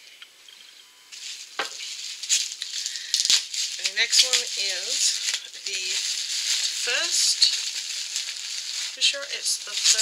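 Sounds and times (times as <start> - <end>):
bubble wrap rustling and crinkling: 1.1 - 10.0
sharp clicks and crackles: 1.6 - 10.0.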